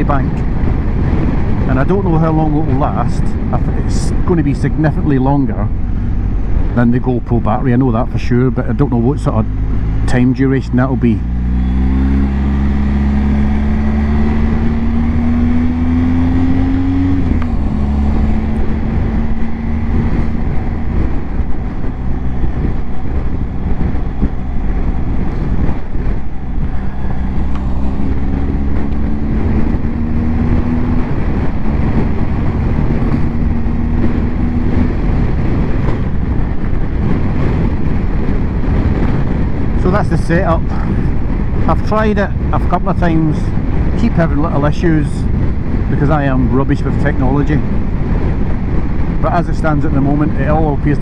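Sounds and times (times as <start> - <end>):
wind rush over microphone: 0.0 - 51.0
motorcycle engine pulling hard: 4.8 - 51.0.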